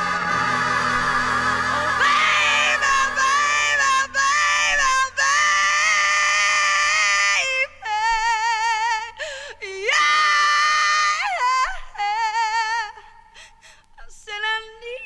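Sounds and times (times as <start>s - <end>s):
women singing unaccompanied: 0.6s - 13.0s.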